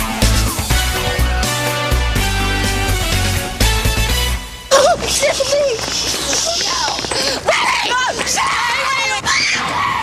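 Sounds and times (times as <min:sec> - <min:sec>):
people screaming in distress: 0:06.6 - 0:10.0.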